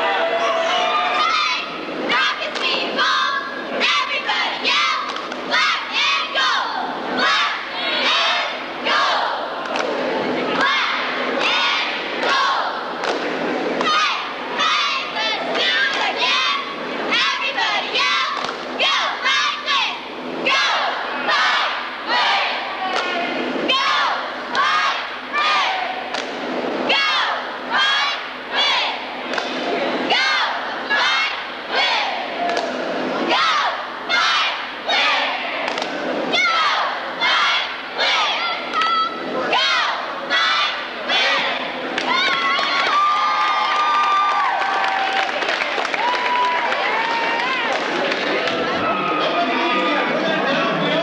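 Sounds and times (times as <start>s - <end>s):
cheerleaders chanting: 0.0s - 26.2s, 26.8s - 51.0s.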